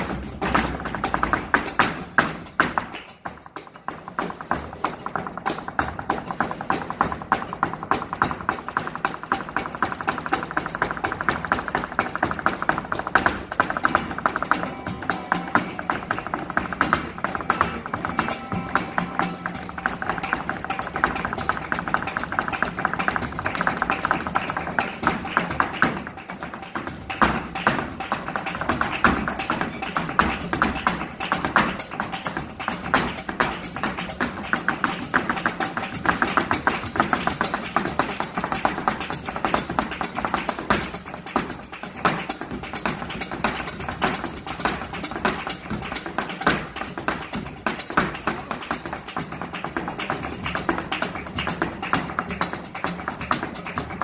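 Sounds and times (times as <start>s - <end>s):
acoustic flamenco guitar: 0.0s - 54.0s
flamenco footwork on stage: 0.0s - 54.0s
hand clapping: 0.0s - 54.0s.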